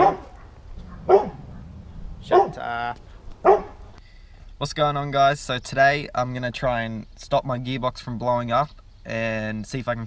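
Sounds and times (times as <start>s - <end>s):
dog barking: 0.0s - 2.7s, 3.4s - 3.8s.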